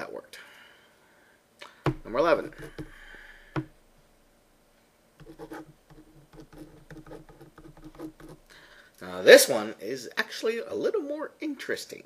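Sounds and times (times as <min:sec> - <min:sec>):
marker scratching on paper: 0:01.9 - 0:03.0, 0:05.2 - 0:08.5.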